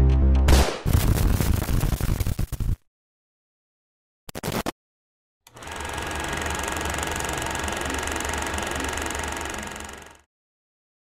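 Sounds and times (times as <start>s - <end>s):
film projector clatter: 5.5s - 10.3s.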